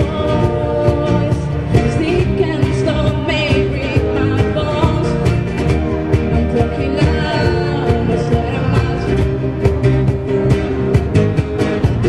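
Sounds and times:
woman singing: 0.0s - 5.4s, 6.5s - 9.3s
bass guitar: 0.0s - 12.0s
cajon beat: 0.0s - 12.0s
strummed acoustic guitars: 0.0s - 12.0s.

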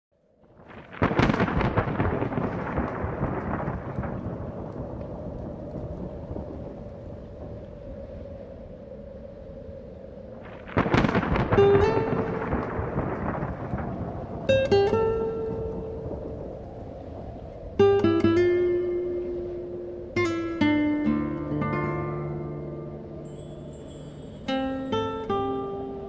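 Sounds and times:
thunder cracking and rumbling: 0.4s - 26.0s
plucked guitar notes: 18.2s - 23.8s.

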